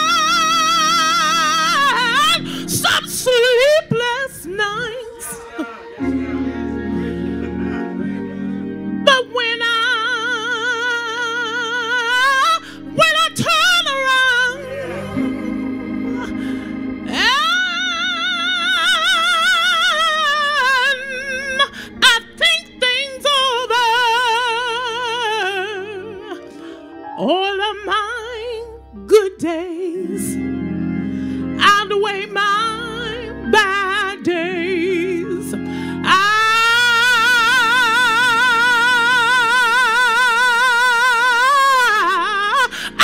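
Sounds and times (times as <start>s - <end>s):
woman singing gospel song: 0.0s - 8.4s, 9.0s - 26.5s, 27.2s - 30.4s, 31.5s - 43.0s
soft sustained accompaniment: 0.0s - 43.0s
low sustained chord: 13.8s - 18.7s.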